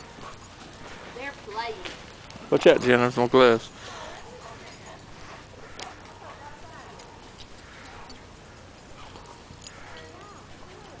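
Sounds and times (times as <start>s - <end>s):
faint voices: 3.0s - 11.0s.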